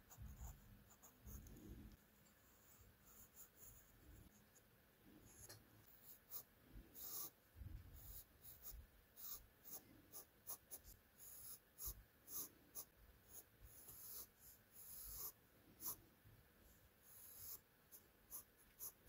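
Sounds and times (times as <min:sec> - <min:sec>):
pencil sketching on paper: 0:00.0 - 0:01.5, 0:02.4 - 0:04.4, 0:05.3 - 0:16.0, 0:16.7 - 0:19.0.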